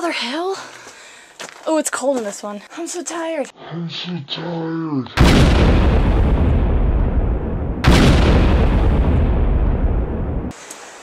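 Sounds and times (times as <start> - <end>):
explosion blast: 5.2 - 10.5.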